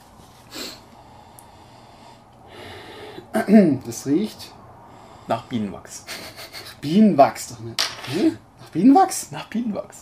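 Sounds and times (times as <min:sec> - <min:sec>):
man sniffing: 0:00.4 - 0:03.4, 0:06.1 - 0:06.8.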